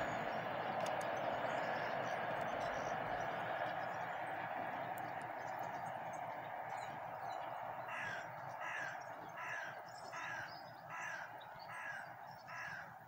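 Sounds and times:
crow cawing: 0:07.8 - 0:13.0.

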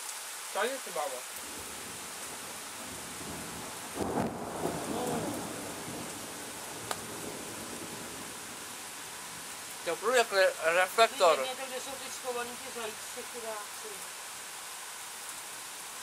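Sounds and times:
light rain falling: 0:00.0 - 0:16.0
distant thunder rolling: 0:01.4 - 0:09.5.

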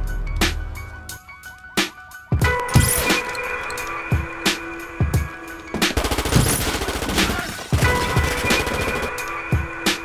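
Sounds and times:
background music: 0:00.0 - 0:10.0
gunshots: 0:05.8 - 0:09.2.

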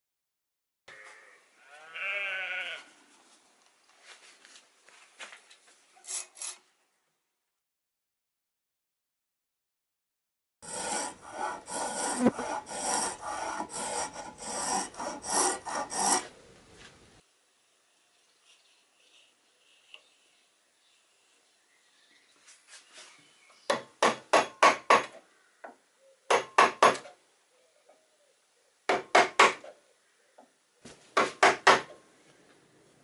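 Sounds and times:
spokeshave rasping on wood: 0:10.6 - 0:16.3.

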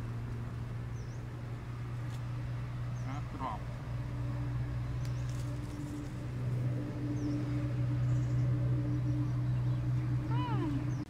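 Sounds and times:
low motor hum: 0:00.0 - 0:11.0.

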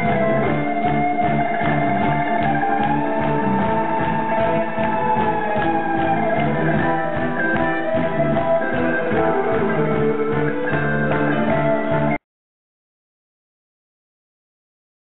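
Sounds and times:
live rock band instrumental: 0:00.0 - 0:12.2.

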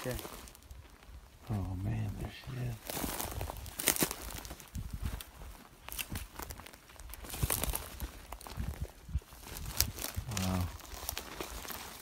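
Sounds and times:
footsteps on dry ground: 0:00.0 - 0:12.0
brush crackling against clothing: 0:01.9 - 0:08.7.

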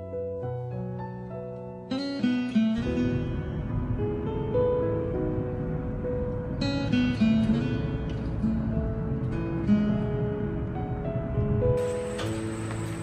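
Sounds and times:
acoustic guitar melody: 0:00.0 - 0:13.0.

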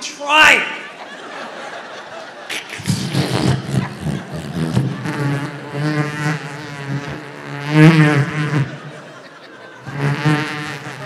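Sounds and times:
man making buzzing balloon noises: 0:02.5 - 0:09.2, 0:09.8 - 0:11.0.

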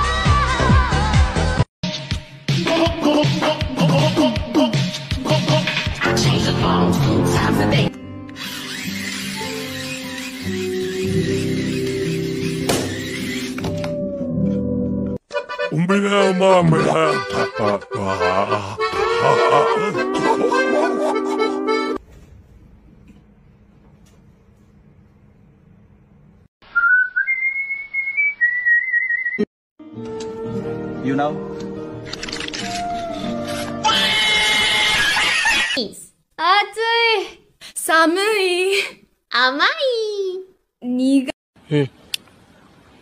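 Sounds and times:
accordion music: 0:15.2 - 0:22.0
harsh scream: 0:33.8 - 0:35.8
woman speaking: 0:35.8 - 0:41.4.

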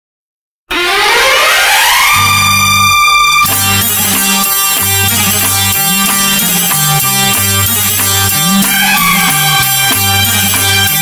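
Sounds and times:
instrumental film music: 0:00.7 - 0:11.0
synthesizer sweep rising in pitch: 0:00.7 - 0:11.0.

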